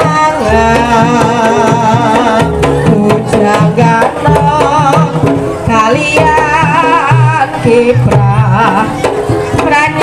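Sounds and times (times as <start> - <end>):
hand drums beating: 0.0 - 10.0.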